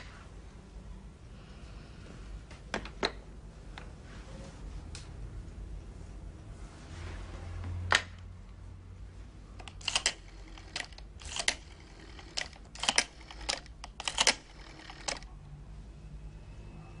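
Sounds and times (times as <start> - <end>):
rotary telephone dial clicks: 9.6 - 15.3.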